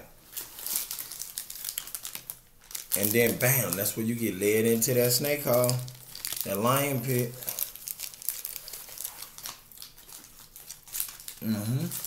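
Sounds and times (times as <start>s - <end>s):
crackling and crinkling rustle: 0.0s - 12.0s.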